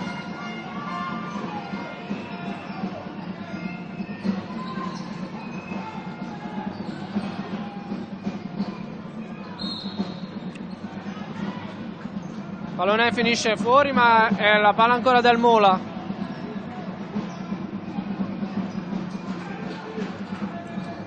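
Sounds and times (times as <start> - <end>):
arena music: 0.0 - 21.0
crowd noise: 0.0 - 21.0.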